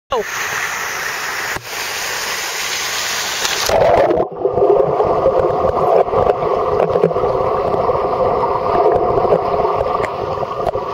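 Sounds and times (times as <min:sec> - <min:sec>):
bright water hiss: 0:00.1 - 0:03.7
muffled underwater rushing: 0:02.5 - 0:10.9.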